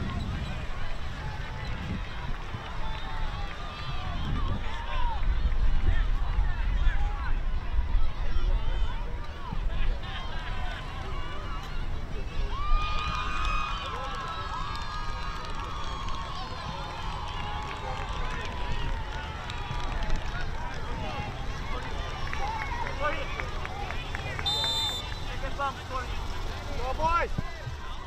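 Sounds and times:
people calling across a field: 13.3 - 28.0
referee's whistle blast: 24.4 - 25.4.

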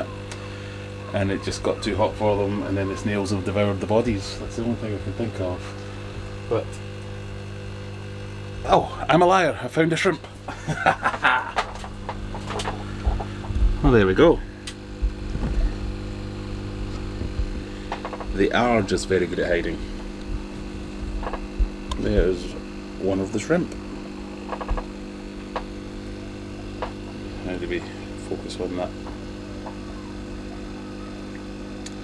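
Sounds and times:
electrical hum: 0.0 - 32.0
man speaking: 1.1 - 5.8, 18.3 - 19.8
handling rumble: 10.4 - 23.0.

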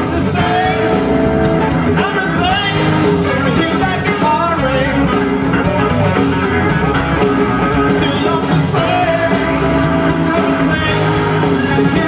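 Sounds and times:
live blues-rock band: 0.0 - 12.0.

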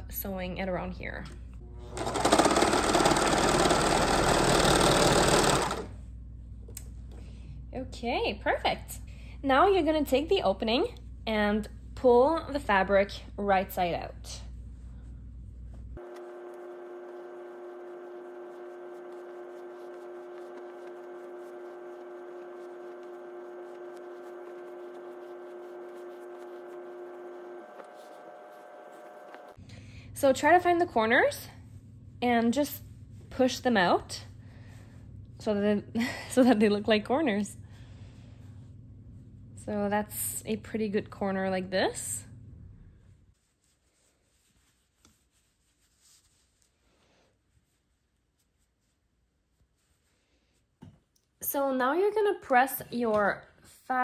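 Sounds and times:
overlock machine stitching chatter: 2.0 - 5.9
fleece fabric rustling: 43.2 - 50.8.

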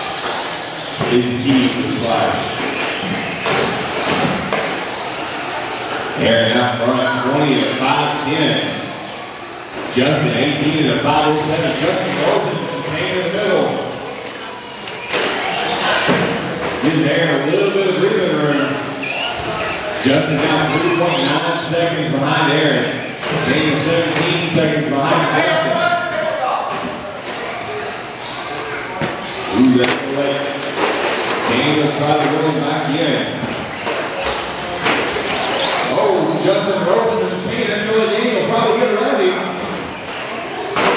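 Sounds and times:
rc truck electric motors whining: 0.0 - 36.9, 39.5 - 40.9.

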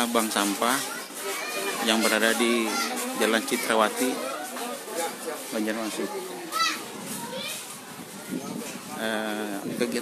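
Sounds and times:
crowd chatter: 0.0 - 10.0
children's voices: 0.7 - 5.2, 6.0 - 9.0.

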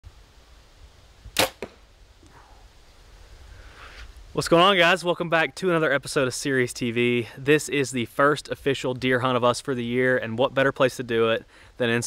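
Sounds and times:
bow string crack: 1.3 - 2.5.

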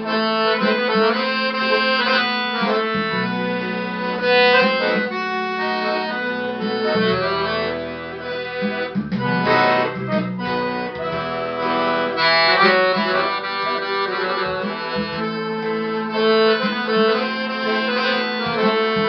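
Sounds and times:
piano accordion melody: 0.0 - 19.0.

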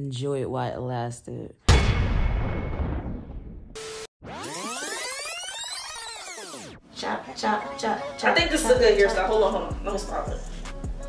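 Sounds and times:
synthesized sweep: 3.8 - 6.8.

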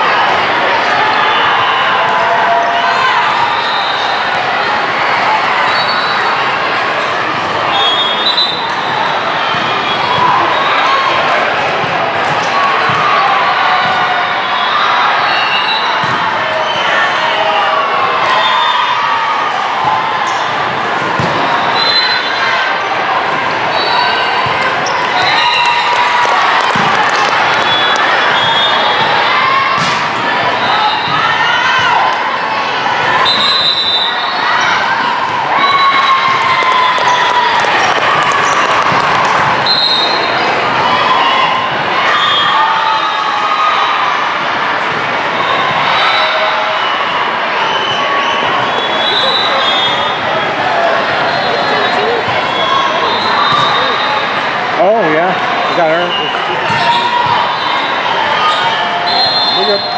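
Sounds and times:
people calling out and cheering: 0.0 - 59.9
balls struck and bouncing: 21.0 - 21.5, 29.8 - 30.2
sneakers squeaking: 23.4 - 31.4, 33.3 - 40.5, 46.8 - 54.5, 55.7 - 59.9.

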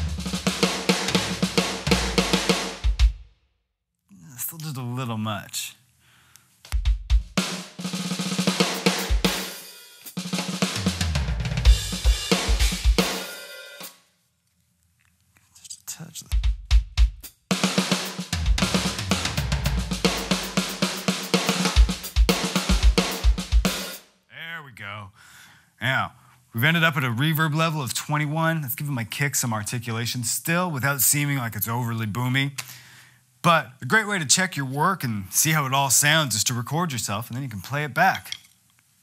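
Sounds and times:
electronic drum kit rock beat: 0.0 - 3.2, 6.7 - 13.9, 16.3 - 24.0.

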